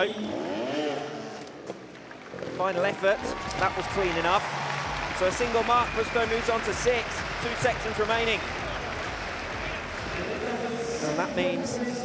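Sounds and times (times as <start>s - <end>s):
motorcycle engine revving: 0.0s - 2.6s.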